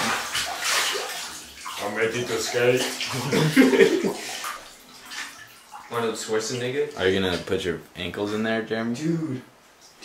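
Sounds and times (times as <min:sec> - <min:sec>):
water sloshing in a bathtub: 0:00.0 - 0:10.0.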